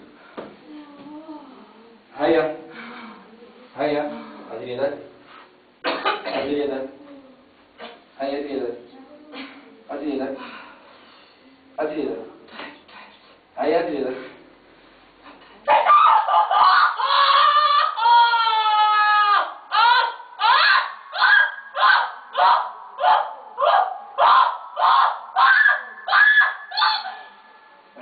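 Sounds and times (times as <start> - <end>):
woman screaming: 15.7 - 27.5.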